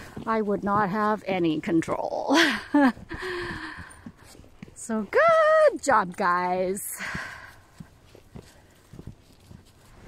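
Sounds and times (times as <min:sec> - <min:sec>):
footsteps on dry leaves: 0:07.5 - 0:10.0.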